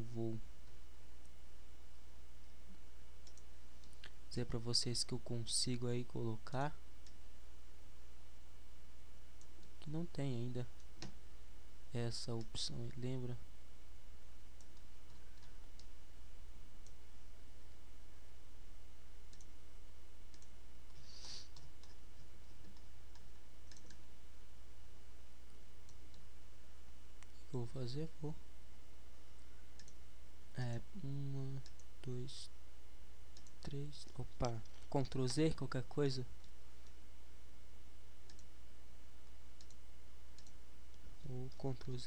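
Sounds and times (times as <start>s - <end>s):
soft hiss: 0.0s - 42.0s
steady low hum: 0.0s - 42.0s
computer mouse clicks: 3.2s - 4.2s, 14.6s - 16.0s, 19.3s - 19.6s, 20.3s - 24.1s, 29.8s - 30.0s, 31.6s - 32.0s, 33.3s - 35.4s, 38.2s - 38.5s, 39.6s - 42.0s.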